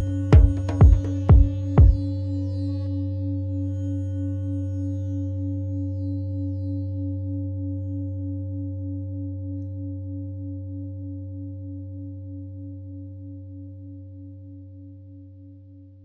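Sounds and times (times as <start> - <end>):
singing bowl ringing: 0.0 - 14.4.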